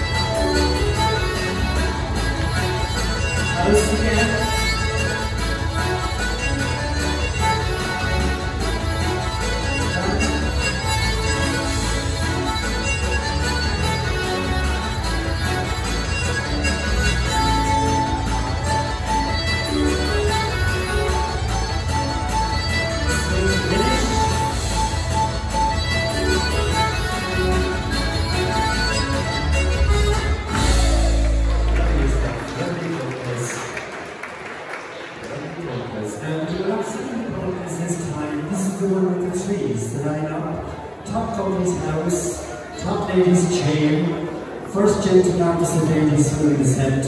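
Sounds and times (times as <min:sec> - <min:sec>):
folk band playing dance music: 0:00.0 - 0:34.3, 0:36.6 - 0:47.0.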